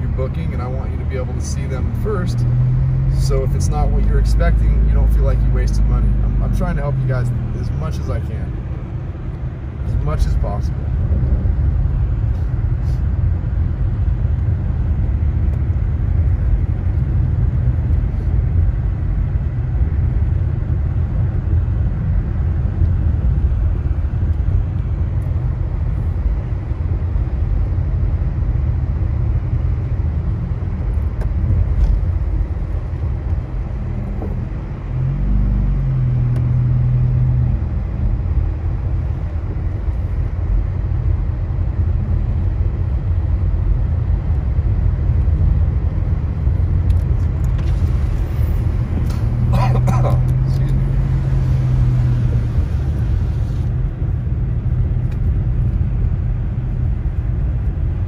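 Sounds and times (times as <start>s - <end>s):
car engine and tyre rumble: 0.0s - 58.0s.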